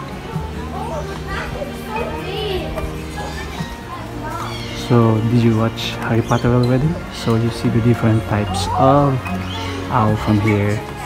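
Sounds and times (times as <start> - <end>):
background music with held notes: 0.0 - 11.0
children chattering and calling out: 0.0 - 11.0.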